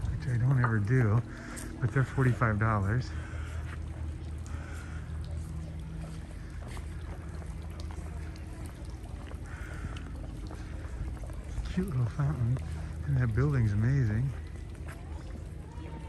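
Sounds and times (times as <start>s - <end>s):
distant voices: 0.0s - 16.0s
steady low rumble: 0.0s - 16.0s.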